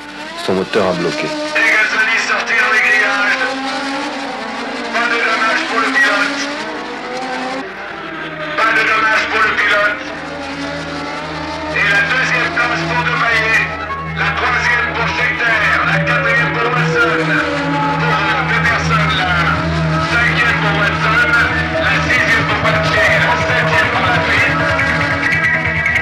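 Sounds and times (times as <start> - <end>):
racing car engines passing at speed: 0.0 - 26.0.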